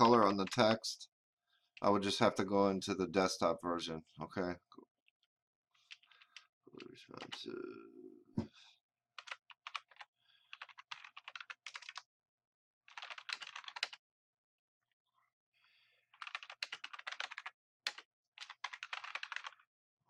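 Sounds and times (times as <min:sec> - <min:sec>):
computer keyboard typing: 0:09.2 - 0:12.0, 0:12.9 - 0:14.0, 0:16.2 - 0:19.7.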